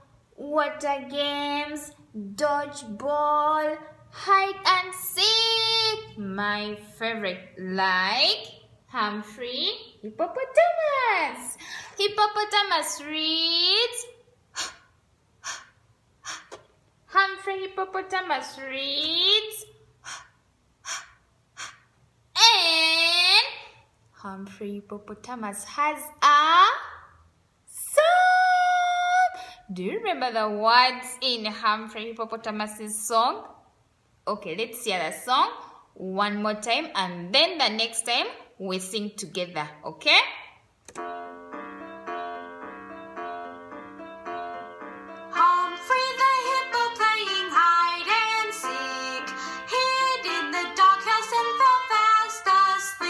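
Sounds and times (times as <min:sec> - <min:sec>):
woman breathing out in puffs: 0:11.6 - 0:12.0, 0:14.6 - 0:16.6
keyboard repeated chords: 0:40.9 - 0:53.0
children's song singing: 0:45.2 - 0:53.0.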